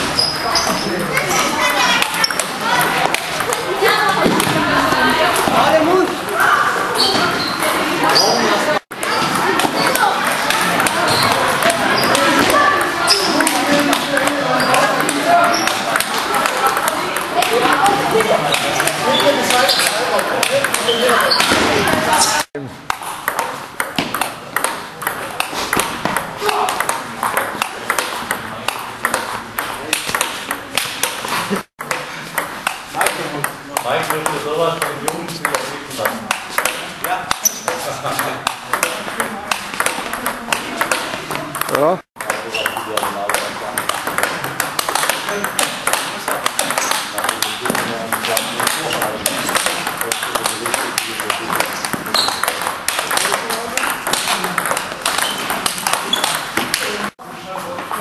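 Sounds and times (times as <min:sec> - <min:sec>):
table tennis ball clicking: 0:01.7 - 0:04.5, 0:09.0 - 0:22.0, 0:22.9 - 0:57.1.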